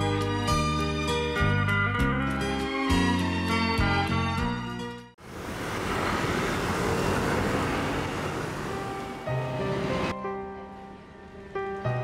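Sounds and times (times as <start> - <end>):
vehicle passing close: 5.2 - 10.1
road traffic noise: 5.2 - 11.8.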